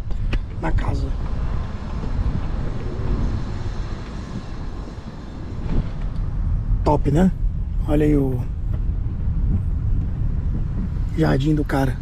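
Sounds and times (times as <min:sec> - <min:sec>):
car engine and road noise: 0:00.0 - 0:12.0
wind rumble on microphone: 0:00.0 - 0:12.0.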